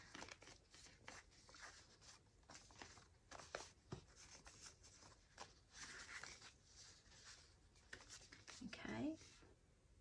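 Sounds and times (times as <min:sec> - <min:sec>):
paper rustling: 0:00.0 - 0:09.4.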